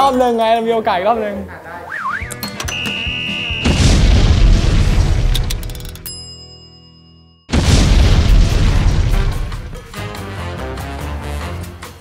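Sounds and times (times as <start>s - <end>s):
cartoon explosion boom: 3.6s - 5.5s, 7.5s - 10.0s
sharp crackles: 7.5s - 9.9s.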